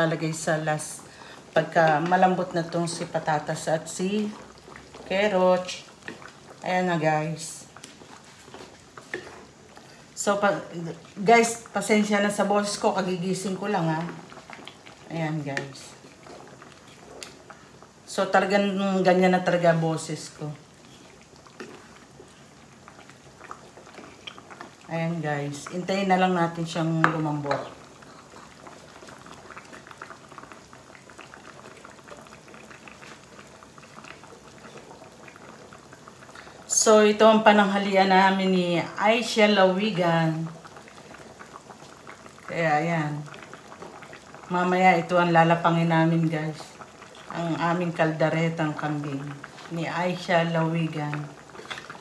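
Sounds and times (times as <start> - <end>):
spoon stirring simmering stew: 1.8 - 6.6, 7.7 - 9.8, 20.2 - 24.9, 25.5 - 33.6, 51.0 - 52.0
stew bubbles popping: 5.7 - 6.7, 13.0 - 18.0, 20.4 - 36.6, 40.4 - 44.5, 50.6 - 52.0.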